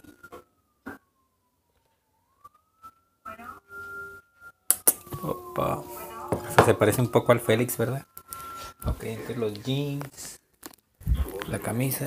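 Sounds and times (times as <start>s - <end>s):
distant siren wailing: 0.0s - 10.4s.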